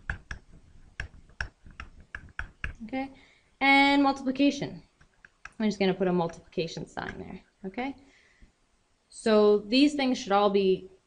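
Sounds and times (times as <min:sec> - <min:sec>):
digital pen tapping on surface: 0:00.0 - 0:02.8.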